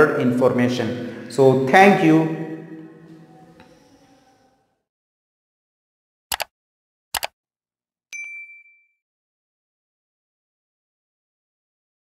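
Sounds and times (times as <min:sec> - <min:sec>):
bright bell ding: 0:08.1 - 0:09.0.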